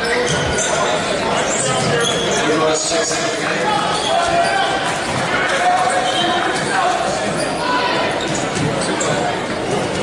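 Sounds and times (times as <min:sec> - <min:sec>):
people chattering in a gym: 0:00.0 - 0:10.0.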